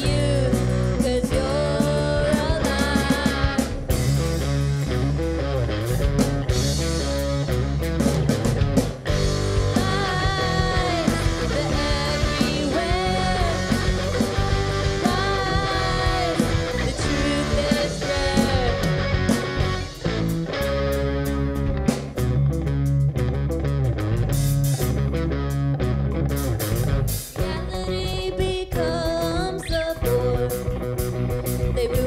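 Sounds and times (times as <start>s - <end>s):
person singing: 0.0s - 3.8s, 9.7s - 19.4s, 27.4s - 30.8s
drum kit: 0.0s - 32.0s
electric bass: 0.0s - 32.0s
electric guitar: 0.0s - 32.0s.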